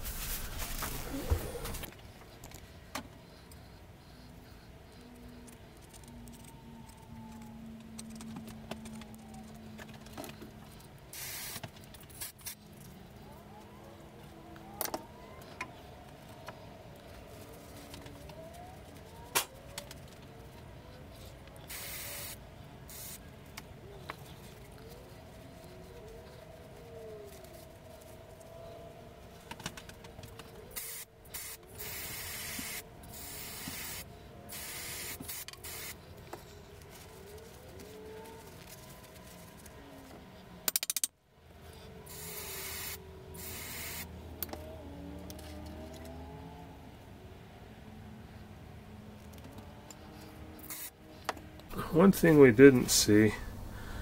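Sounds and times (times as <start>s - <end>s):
aerosol spray hissing: 11.2s - 11.6s, 21.7s - 23.2s.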